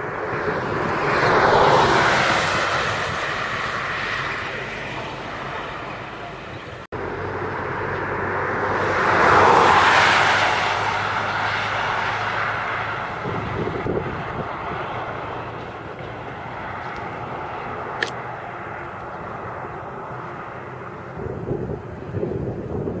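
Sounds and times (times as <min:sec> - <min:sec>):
vehicle passing: 0:00.0 - 0:23.0.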